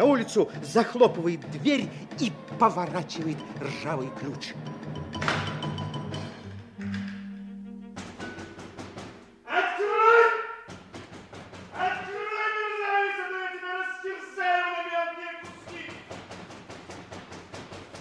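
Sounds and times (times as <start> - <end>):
held musical notes: 0.0 - 9.5
pounding on wooden door: 8.0 - 9.3, 10.6 - 12.3, 15.4 - 18.0
man shouting: 9.5 - 10.7, 11.7 - 16.0.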